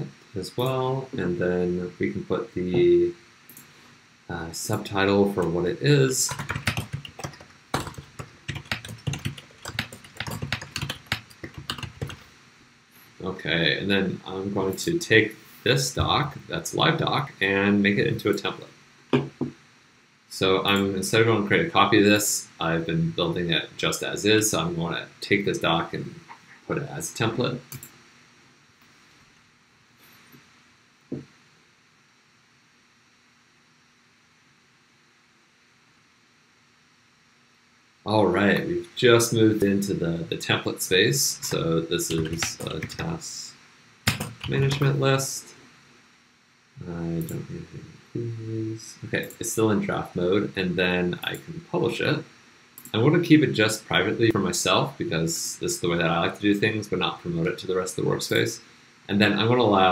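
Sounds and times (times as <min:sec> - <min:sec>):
faint room hiss: 0:00.0 - 0:59.9
typing on computer keyboard: 0:06.3 - 0:12.2, 0:42.1 - 0:43.0, 0:44.1 - 0:44.9.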